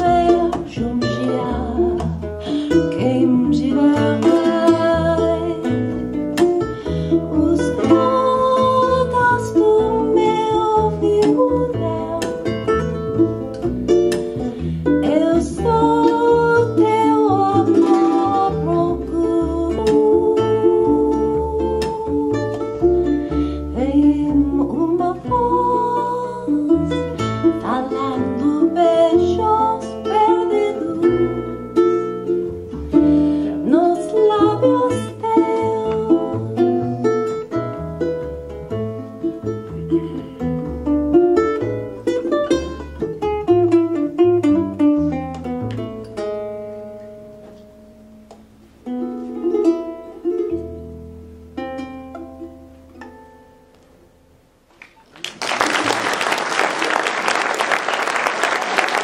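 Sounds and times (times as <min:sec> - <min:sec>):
walking double bass line: 0:00.0 - 0:55.0
plucked ukulele melody: 0:00.0 - 0:55.2.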